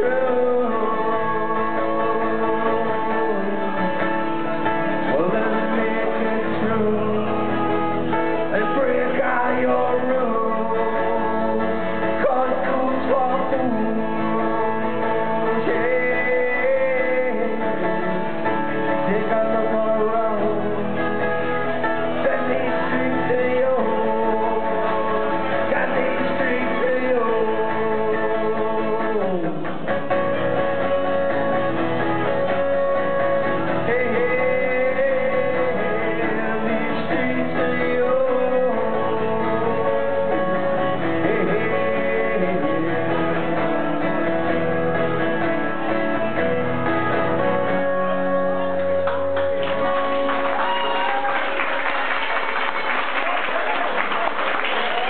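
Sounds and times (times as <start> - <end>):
man singing: 0.0 - 46.1
acoustic guitar: 0.0 - 55.0.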